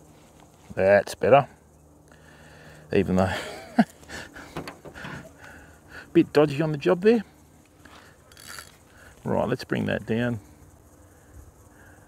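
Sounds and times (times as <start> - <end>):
man chuckling: 3.3 - 5.5.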